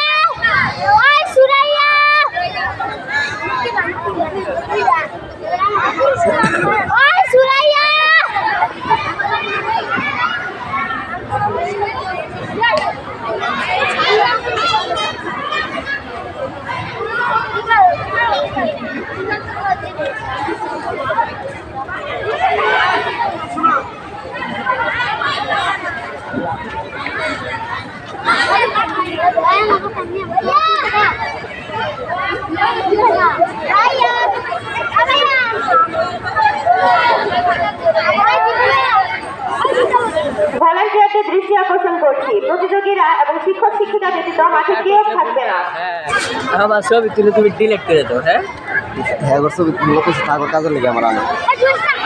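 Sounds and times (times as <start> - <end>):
people chattering: 0.0 - 52.0.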